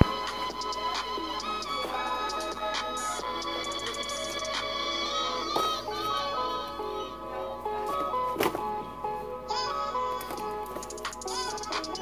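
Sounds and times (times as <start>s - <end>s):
bright melody background music: 0.0s - 12.0s.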